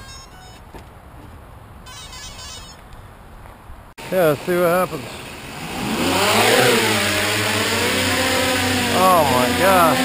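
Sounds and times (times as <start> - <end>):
quadcopter motors whining: 4.4 - 10.0.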